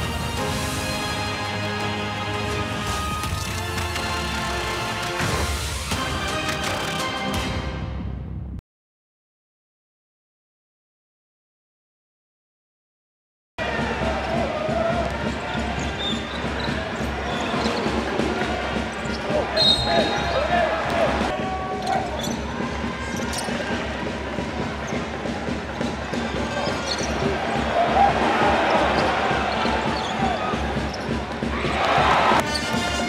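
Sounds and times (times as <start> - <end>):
arena voices: 26.4 - 32.4.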